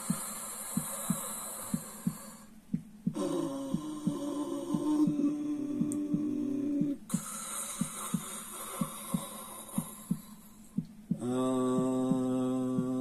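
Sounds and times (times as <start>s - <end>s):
breathy hiss of breathing: 0.0s - 5.2s, 7.1s - 12.2s
heartbeat double thump: 0.0s - 13.0s
humming chant note: 3.1s - 7.2s, 11.1s - 13.0s.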